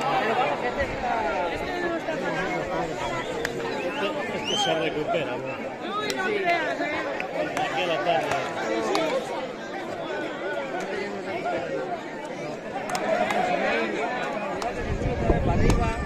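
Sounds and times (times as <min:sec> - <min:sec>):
crowd chattering: 0:00.0 - 0:16.0.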